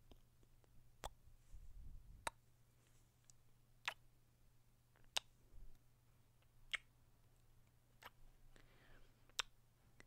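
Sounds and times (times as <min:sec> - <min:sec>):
kiss lip smack: 0:03.8 - 0:04.0, 0:06.7 - 0:06.9, 0:08.0 - 0:08.2, 0:09.4 - 0:09.6.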